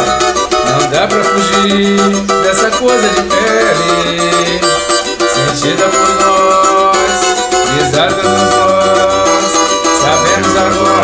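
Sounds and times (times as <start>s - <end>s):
cavaquinho strummed in samba rhythm: 0.0s - 11.0s
low bass notes: 7.7s - 11.0s.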